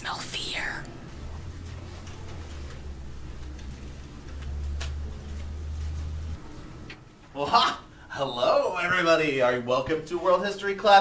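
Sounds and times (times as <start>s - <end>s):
person whispering: 0.0s - 0.9s
low hum of room tone: 0.0s - 11.0s.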